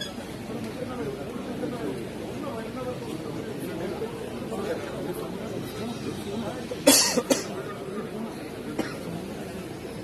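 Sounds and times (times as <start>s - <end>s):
crowd murmur: 0.0s - 10.0s
person coughing: 6.9s - 7.5s.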